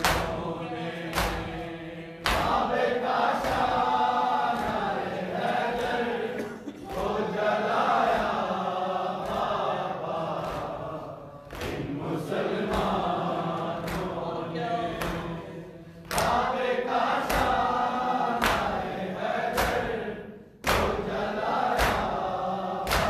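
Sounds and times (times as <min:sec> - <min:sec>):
men chanting a lament: 0:00.0 - 0:23.0.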